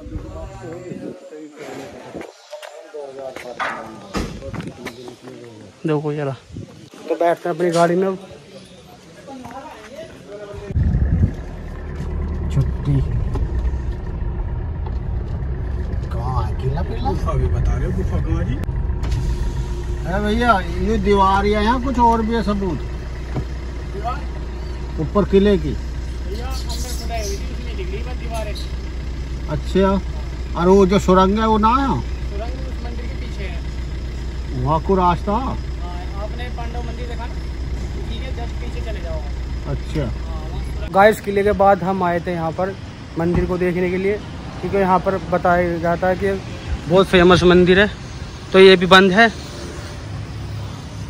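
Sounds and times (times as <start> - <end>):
car engine and tyres rumbling: 0.0 - 8.2, 8.9 - 51.0
people talking: 0.0 - 11.0, 12.4 - 13.4, 16.0 - 18.7, 20.0 - 22.9, 23.9 - 24.4, 25.0 - 28.7, 29.5 - 33.6, 34.5 - 48.0
loud thump: 3.6 - 4.6, 18.6 - 20.0.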